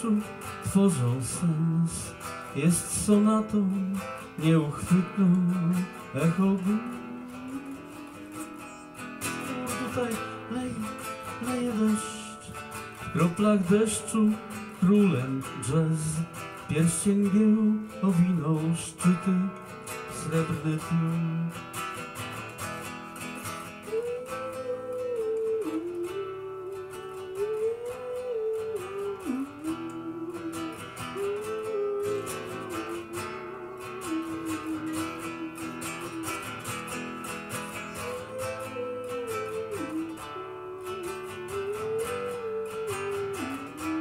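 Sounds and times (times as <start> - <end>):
acoustic guitar strumming: 0.0 - 44.0
wordless melody line: 0.0 - 44.0.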